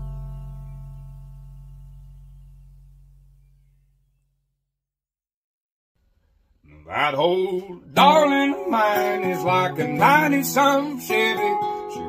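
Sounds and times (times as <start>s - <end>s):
guitar chord ringing out: 0.0s - 3.5s.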